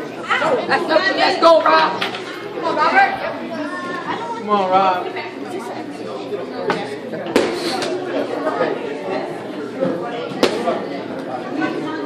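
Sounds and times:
voices chattering in a hall: 0:00.0 - 0:12.0.

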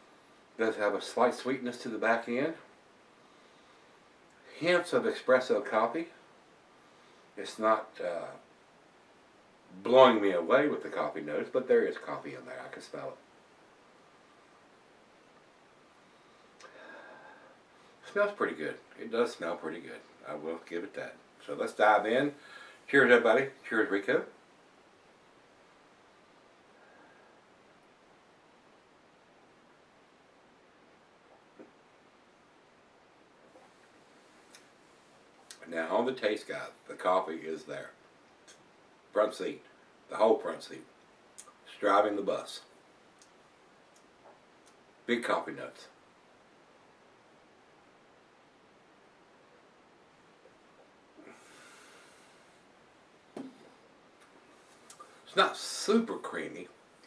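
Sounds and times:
faint click: 0:43.2 - 0:44.8.

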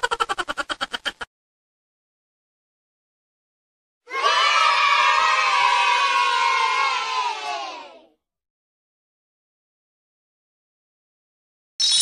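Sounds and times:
children cheering and shouting: 0:04.1 - 0:08.2.

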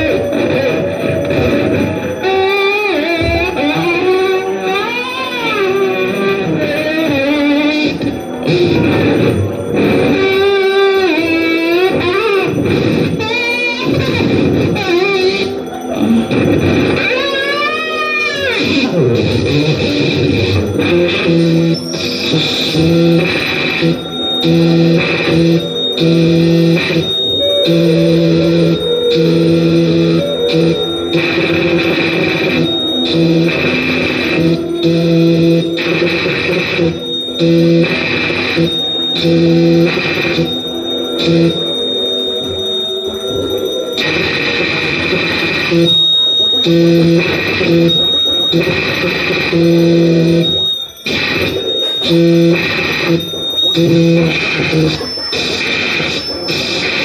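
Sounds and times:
distorted chopped drone: 0:00.0 - 0:57.0
harsh noise wash: 0:00.0 - 0:57.0.

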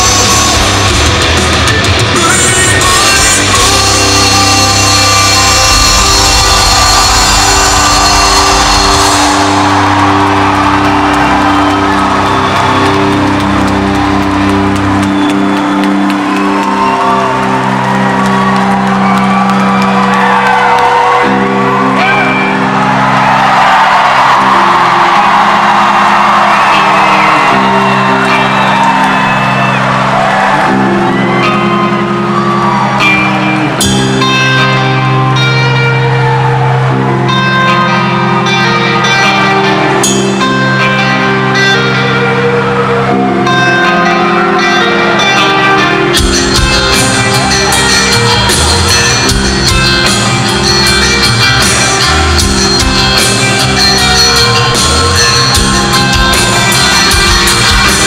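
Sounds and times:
crowd cheering and whistling: 0:00.0 - 0:58.0
live rock band playing: 0:00.0 - 0:58.0.

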